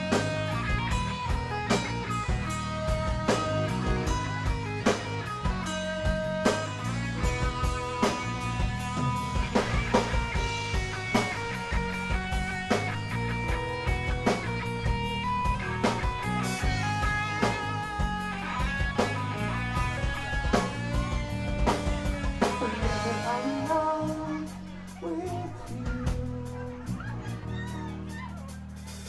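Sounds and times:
rock band playing: 0:00.0 - 0:29.0.

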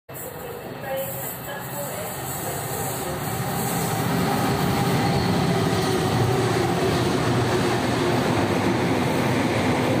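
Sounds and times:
diesel locomotive passing: 0:00.1 - 0:10.0.

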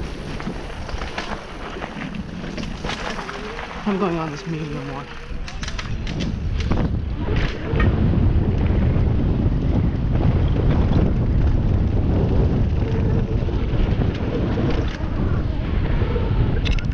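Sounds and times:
bike knocks and rattles: 0:00.0 - 0:04.2, 0:05.1 - 0:15.4
bike tyres rumbling on gravel: 0:00.0 - 0:16.9
wind buffeting microphone: 0:00.0 - 0:16.9.

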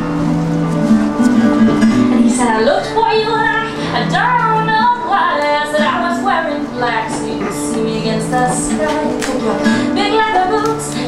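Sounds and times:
instrumental backing: 0:00.0 - 0:11.0
woman singing: 0:02.1 - 0:11.0.

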